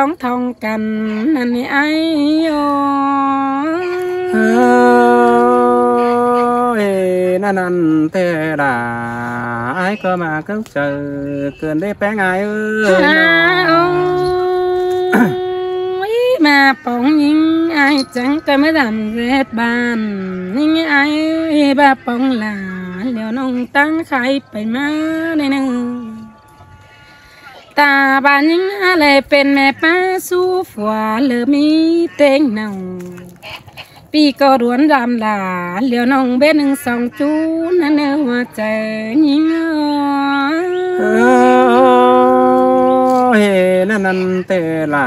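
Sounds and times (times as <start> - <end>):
woman singing folk song: 0.0 - 33.4, 34.0 - 45.0.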